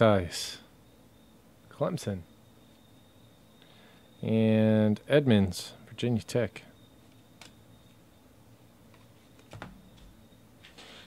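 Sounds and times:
handling trading cards: 8.9 - 10.1.

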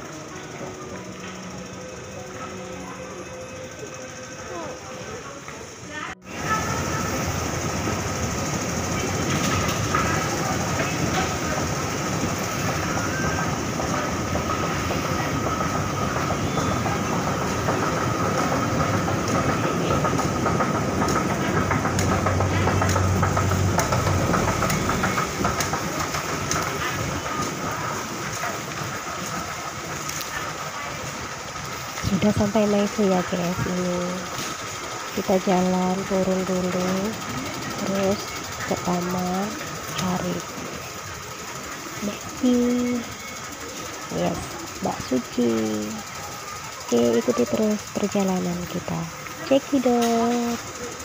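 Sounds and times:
escalator mechanical rumble: 0.0 - 51.0
thin steady whine: 0.0 - 51.0.

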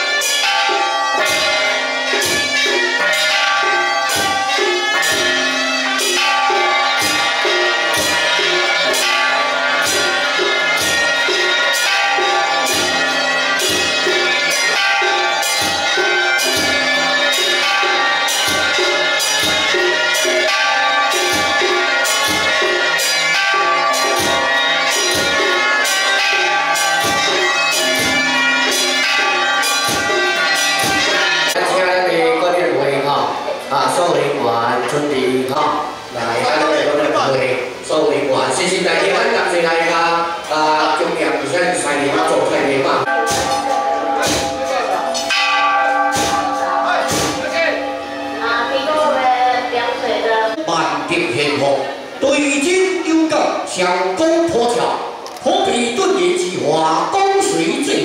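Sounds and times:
gongs and cymbals ringing: 0.0 - 58.0
deep drum beats: 4.0 - 31.3.

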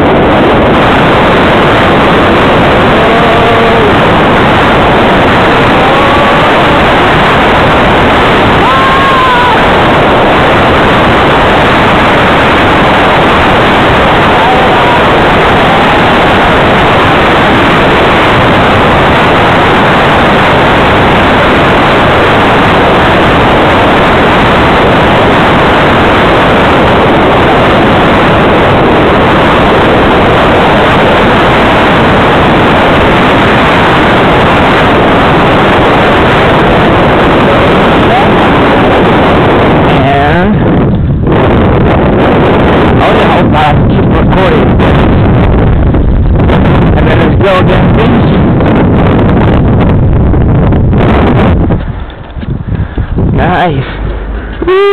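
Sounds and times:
wind rushing on microphone: 0.0 - 54.9.

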